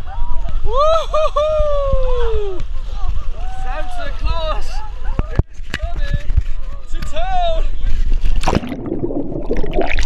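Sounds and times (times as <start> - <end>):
water splashing over camera: 8.3 - 10.0
muffled underwater gurgling: 8.4 - 10.0.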